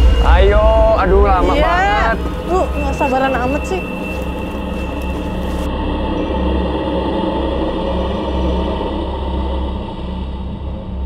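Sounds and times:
deep pulsing bass: 0.0 - 11.0
suspenseful drone score: 0.0 - 11.0.

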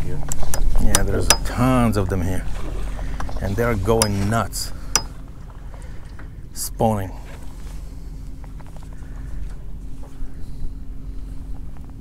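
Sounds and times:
boat engine hum and rumble: 0.0 - 12.0.

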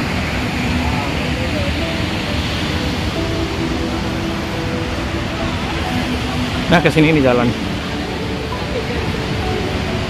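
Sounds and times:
faint distant voices: 0.0 - 10.0
heavy low rumble: 0.0 - 10.0.

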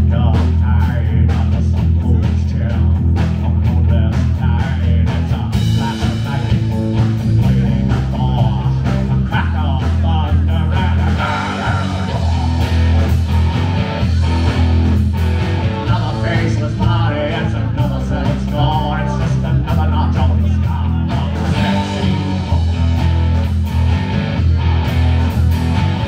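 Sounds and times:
drum kit playing a steady beat: 0.0 - 26.0
electric bass: 0.0 - 26.0
electric guitar: 0.0 - 26.0.

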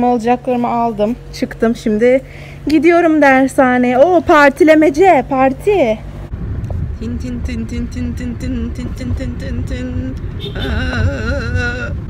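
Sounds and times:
car driving rumble: 0.0 - 12.0
higher wavering voice: 6.9 - 12.0
song with sung melody: 6.9 - 12.0.

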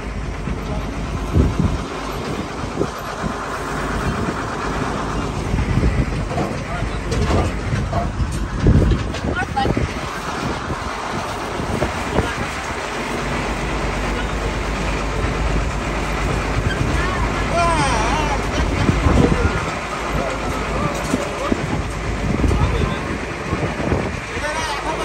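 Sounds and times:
tractor engine rumble: 0.0 - 25.0
wagon rattling: 0.0 - 25.0.

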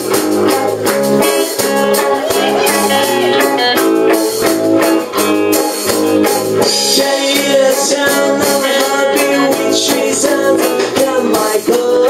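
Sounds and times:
drum kit hits: 0.0 - 9.7
electric bass: 0.0 - 12.0
electric guitars: 0.0 - 12.0.

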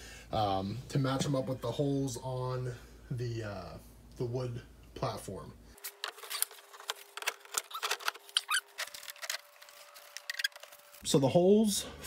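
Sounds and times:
short squeak: 7.7 - 8.8.

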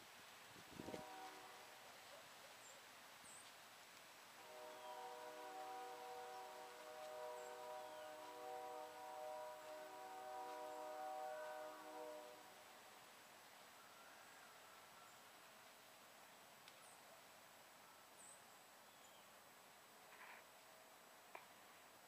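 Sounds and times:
distant train horn blasts: 0.7 - 2.2, 4.3 - 15.2.

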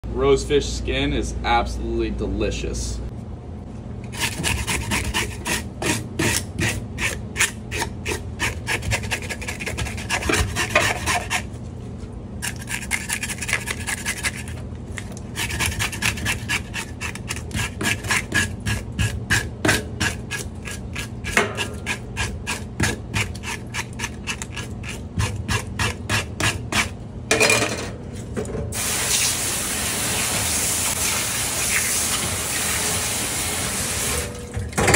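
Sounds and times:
fish scaler scraping scales: 12.4 - 14.6, 15.3 - 18.8, 20.0 - 26.9.

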